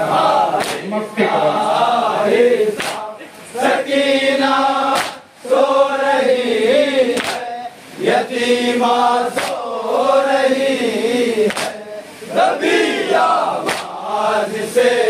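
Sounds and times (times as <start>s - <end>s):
men chanting over loudspeakers: 0.0s - 15.0s
chest-beating slaps: 0.6s - 0.9s, 2.8s - 3.1s, 4.9s - 5.2s, 7.2s - 7.5s, 9.3s - 9.6s, 11.5s - 11.8s, 13.6s - 14.0s.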